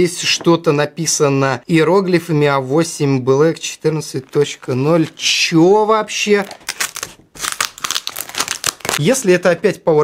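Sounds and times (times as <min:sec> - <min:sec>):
plastic package tearing: 0:06.4 - 0:09.3.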